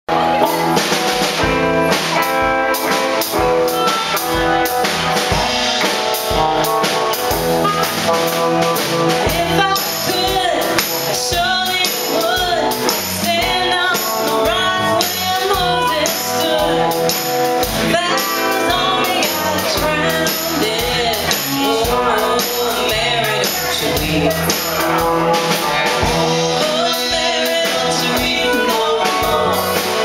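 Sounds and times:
drum kit beat: 0:00.1 - 0:30.0
electric guitars: 0:00.1 - 0:30.0
person singing: 0:06.6 - 0:30.0.

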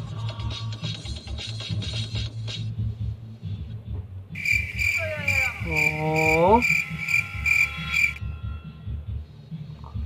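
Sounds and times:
cricket chirping: 0:04.4 - 0:08.2.

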